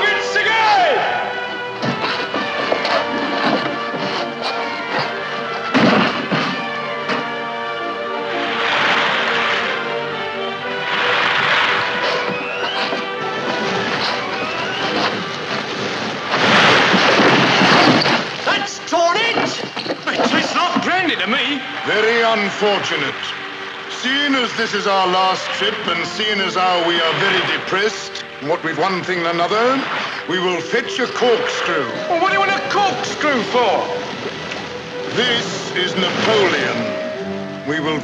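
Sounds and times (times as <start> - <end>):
orchestral film music: 0.0 - 38.0
heavy waves breaking against a boat: 8.2 - 37.2.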